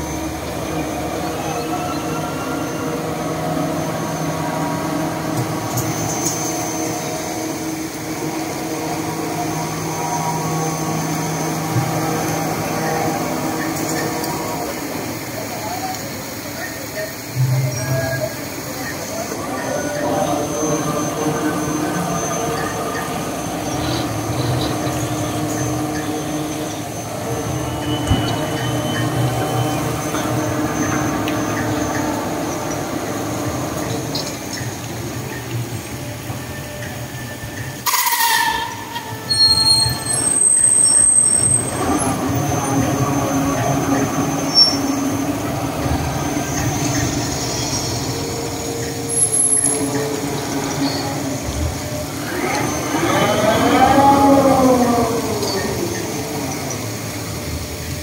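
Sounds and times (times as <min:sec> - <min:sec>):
ride mechanical hum: 0:00.0 - 0:38.1, 0:38.8 - 0:58.0
high squeal: 0:00.0 - 0:57.7.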